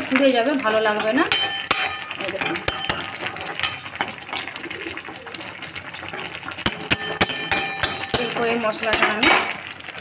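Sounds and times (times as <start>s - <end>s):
seeds rattling in pan: 0.0s - 9.4s
spoon scraping metal pan: 0.1s - 9.6s.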